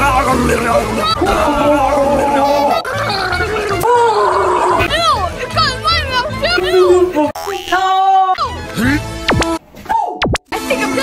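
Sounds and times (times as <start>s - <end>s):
person gargling and gagging: 0.2s - 4.9s.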